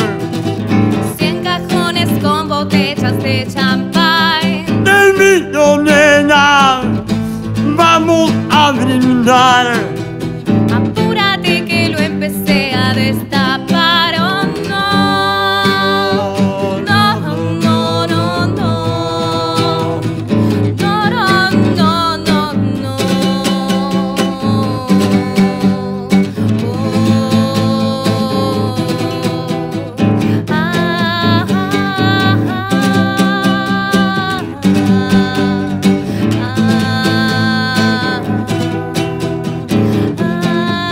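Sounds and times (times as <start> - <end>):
classical guitar: 0.0 - 40.9
person singing: 0.9 - 10.1, 10.7 - 40.9.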